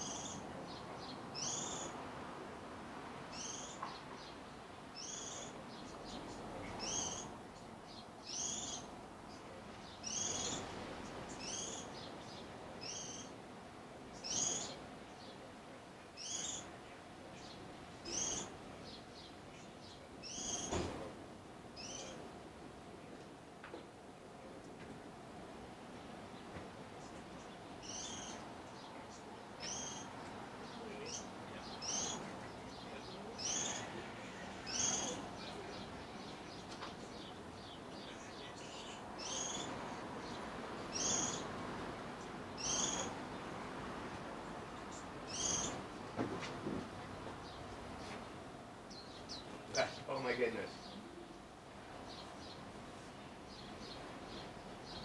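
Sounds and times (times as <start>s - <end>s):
small bird calling: 0.0s - 2.0s, 3.3s - 4.3s, 5.0s - 7.4s, 8.2s - 9.0s, 9.9s - 10.7s, 11.3s - 13.4s, 14.2s - 14.8s, 16.2s - 16.8s, 17.4s - 20.9s, 21.8s - 22.3s, 27.4s - 34.0s, 34.6s - 41.5s, 42.2s - 43.4s, 44.8s - 45.9s.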